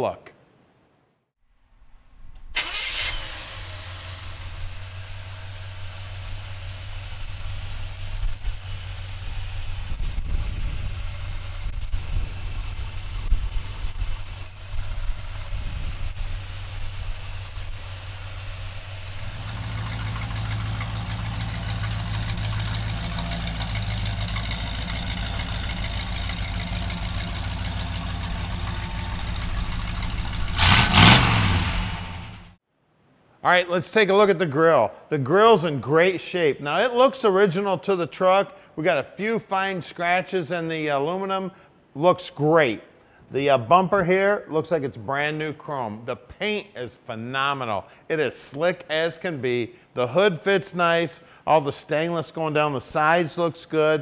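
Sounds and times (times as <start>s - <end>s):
vee eight engine starting and running: 2.5s - 32.6s.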